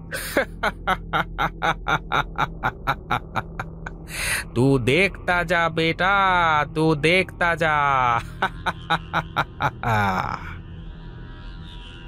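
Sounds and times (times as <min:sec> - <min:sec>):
man laughing rhythmically: 0:00.0 - 0:04.6, 0:07.9 - 0:10.6.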